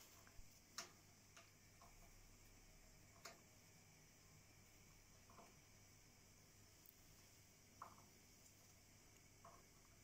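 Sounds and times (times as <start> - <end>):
faint sharp clicks: 0.2 - 2.0.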